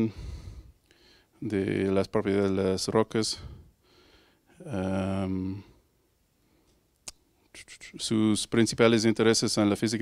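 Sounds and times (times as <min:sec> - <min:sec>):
man speaking breathily: 0:00.0 - 0:00.7, 0:01.4 - 0:03.8.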